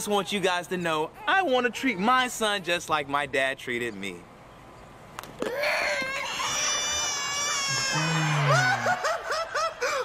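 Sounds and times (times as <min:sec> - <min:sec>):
high-pitched wail: 0:05.5 - 0:09.2
high-pitched laughter: 0:05.6 - 0:10.0.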